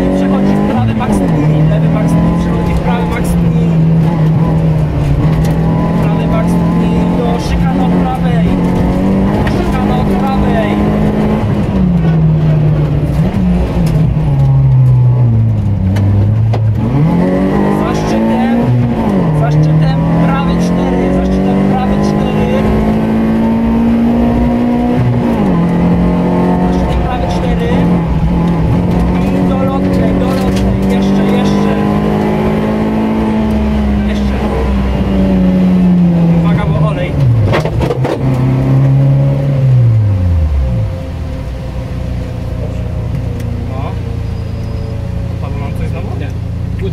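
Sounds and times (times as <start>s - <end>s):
rally car engine revving: 0.0s - 46.9s.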